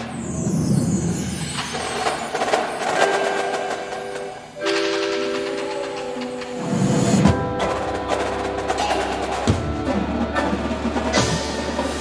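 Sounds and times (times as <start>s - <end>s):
drum strikes: 2.3s - 12.0s.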